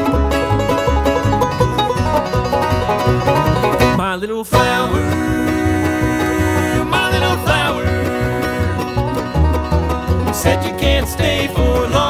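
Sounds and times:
banjo picking: 0.0 - 12.0
bass line: 0.0 - 12.0
bluegrass band playing: 0.0 - 12.0.

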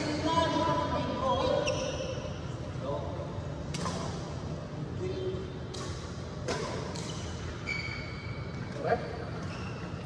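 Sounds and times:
voices echoing in hall: 0.0 - 4.2
racket hitting shuttlecock: 5.7 - 7.2.

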